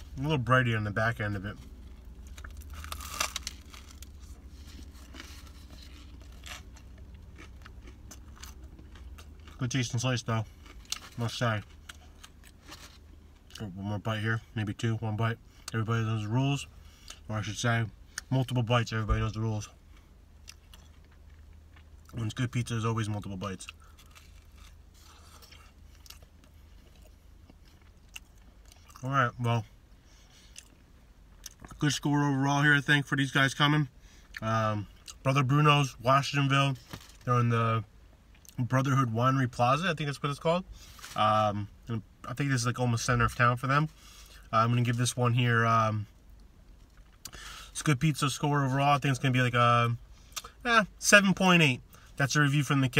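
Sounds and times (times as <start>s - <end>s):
steady low hum: 0.0s - 52.9s
chewing with faint crunches: 1.6s - 13.7s, 19.8s - 22.4s, 23.2s - 29.2s, 30.1s - 31.8s
chewing food: 2.2s - 9.8s.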